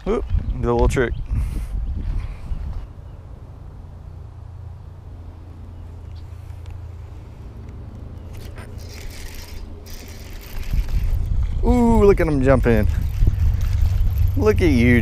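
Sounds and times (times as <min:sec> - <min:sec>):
wind rumble on microphone: 0:00.0 - 0:03.1, 0:08.4 - 0:15.0.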